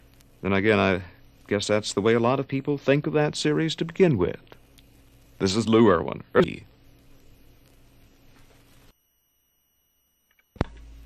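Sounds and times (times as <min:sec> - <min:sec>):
vinyl record surface noise: 0:00.0 - 0:11.0
sharp click: 0:10.3 - 0:10.9.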